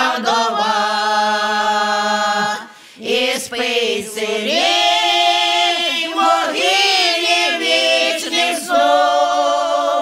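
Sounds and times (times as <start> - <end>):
women singing a cappella: 0.0 - 10.0.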